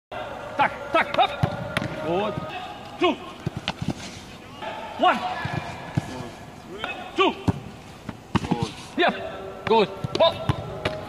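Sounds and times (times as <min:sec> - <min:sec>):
football thuds: 0:01.0 - 0:02.6, 0:03.3 - 0:04.3, 0:05.2 - 0:08.9.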